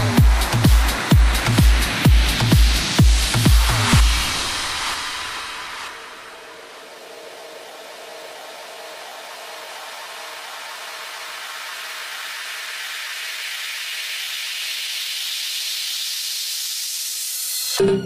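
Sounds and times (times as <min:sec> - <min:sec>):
white-noise riser hissing: 0:00.0 - 0:17.8.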